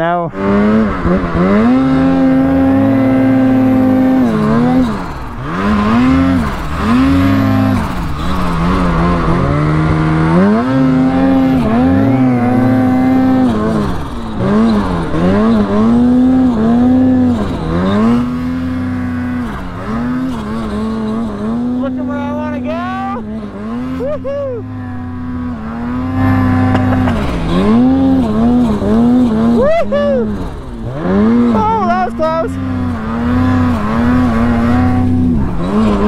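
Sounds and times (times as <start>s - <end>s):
snowmobile engine revving: 0.0s - 36.0s
second snowmobile passing: 0.3s - 36.0s.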